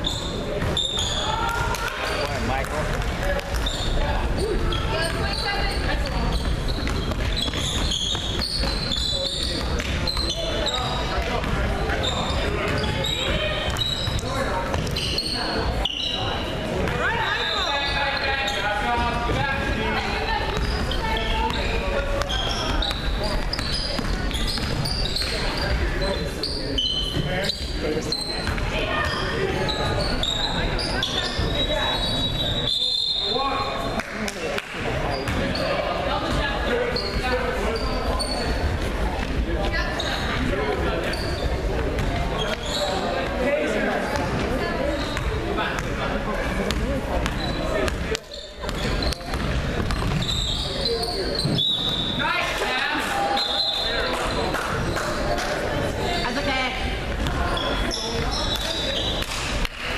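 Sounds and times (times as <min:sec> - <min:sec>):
sneakers squeaking: 0:00.0 - 0:34.0, 0:34.8 - 0:59.7
ball bouncing on hardwood court: 0:05.0 - 0:15.0, 0:20.4 - 0:25.4, 0:46.7 - 0:50.4.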